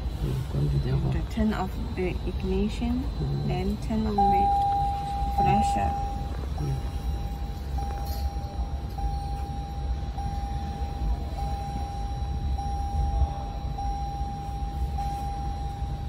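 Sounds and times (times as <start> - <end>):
high-pitched electronic tone: 0.8 - 16.0.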